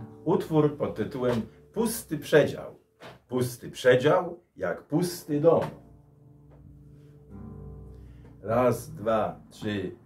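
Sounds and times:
soft guitar chord: 0:05.6 - 0:10.0.

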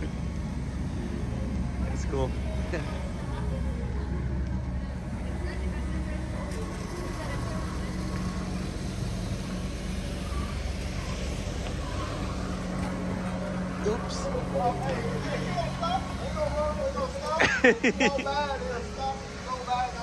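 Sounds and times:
floor scrubber drone: 0:00.0 - 0:20.0.

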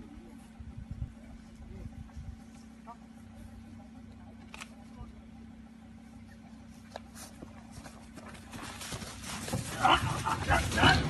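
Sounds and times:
rustling movement: 0:06.7 - 0:11.0
hurried footsteps on dry grass: 0:07.0 - 0:11.0
man shouting: 0:09.8 - 0:11.0.

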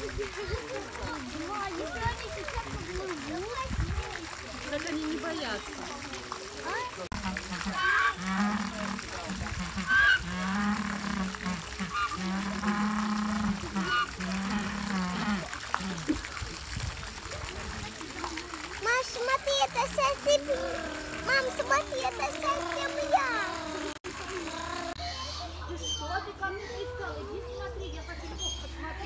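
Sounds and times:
hose water splashing into pool: 0:00.0 - 0:25.4.

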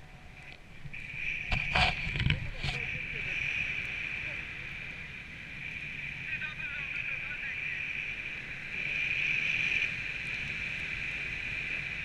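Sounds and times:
high-pitched whine: 0:00.0 - 0:12.0
wind gusts buffeting: 0:00.0 - 0:12.0
wind rushing over microphone: 0:00.0 - 0:12.0.

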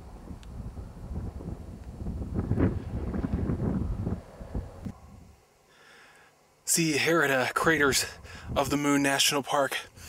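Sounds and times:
wind buffeting microphone: 0:00.0 - 0:05.3, 0:07.6 - 0:08.9.

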